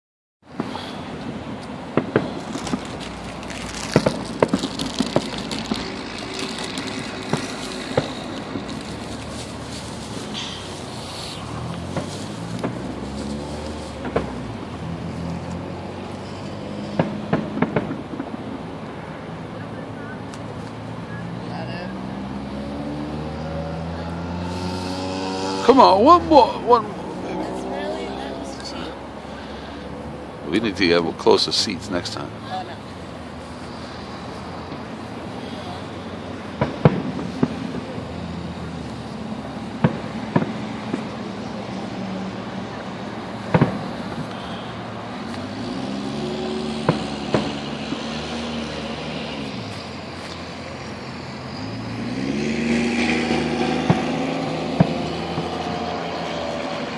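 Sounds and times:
traffic engine hum: 0.4 - 56.9
distant fireworks bangs: 0.5 - 19.6, 33.1 - 41.9, 42.8 - 48.6, 53.0 - 56.9.

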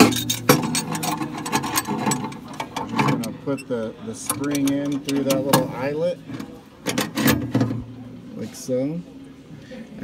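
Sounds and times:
metal spring clinks and scrapes: 0.0 - 7.8.

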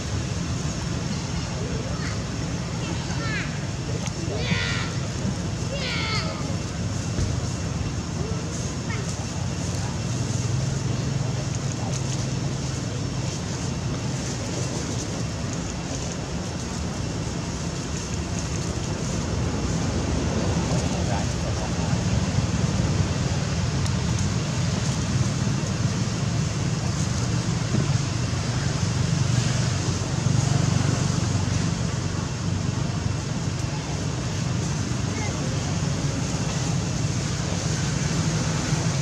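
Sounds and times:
continuous low rumble: 0.0 - 39.0.

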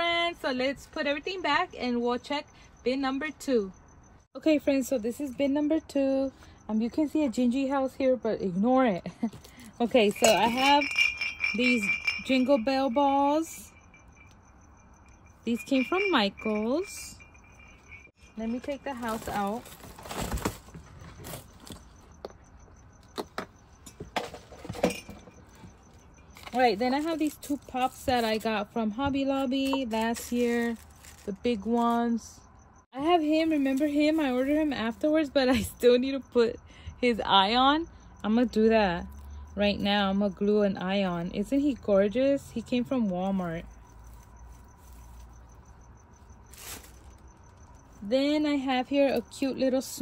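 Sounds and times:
decorations rustling: 9.2 - 14.4, 15.1 - 22.1, 29.3 - 32.0, 43.3 - 48.0.

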